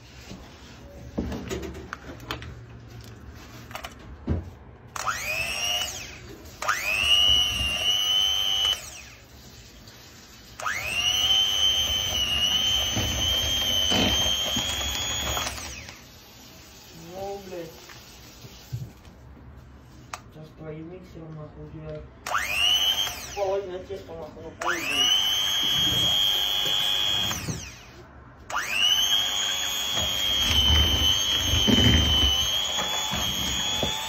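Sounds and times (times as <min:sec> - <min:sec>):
electric hand mixer whine: 0:05.0 - 0:09.2, 0:10.6 - 0:16.0, 0:22.3 - 0:23.5, 0:24.6 - 0:34.0.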